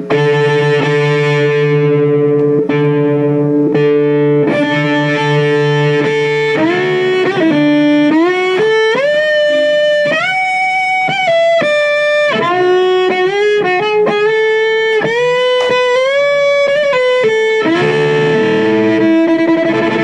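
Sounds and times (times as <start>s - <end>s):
amplified bowed electric violin: 0.0s - 20.0s.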